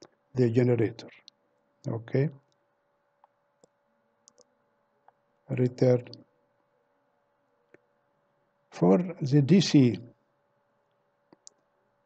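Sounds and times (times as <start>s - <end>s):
faint mouse clicks: 3.2s - 5.2s, 10.9s - 11.7s.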